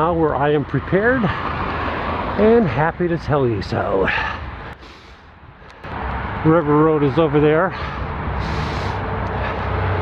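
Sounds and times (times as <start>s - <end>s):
tyre and road rumble: 0.0s - 10.0s.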